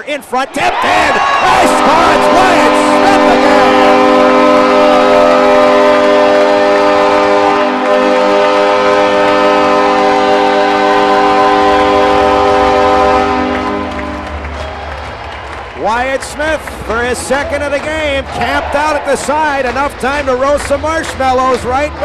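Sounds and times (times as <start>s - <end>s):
arena goal horn chord: 1.4s - 15.2s.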